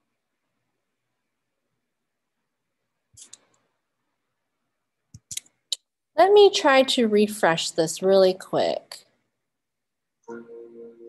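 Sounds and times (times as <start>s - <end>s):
computer mouse clicking: 3.2s - 3.6s.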